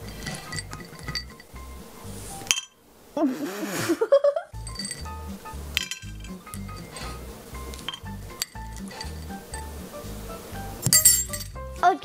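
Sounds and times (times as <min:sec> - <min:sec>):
metal spoon clinking glass bowl: 0:00.0 - 0:01.7, 0:02.4 - 0:02.8, 0:04.6 - 0:09.7, 0:10.8 - 0:11.6
background music with steady beat: 0:01.2 - 0:02.5, 0:04.6 - 0:12.0.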